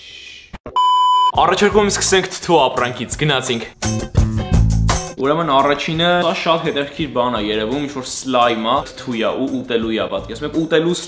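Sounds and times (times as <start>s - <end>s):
electronic censor bleep: 0.7s - 1.4s
man speaking: 1.4s - 3.8s, 5.2s - 11.0s.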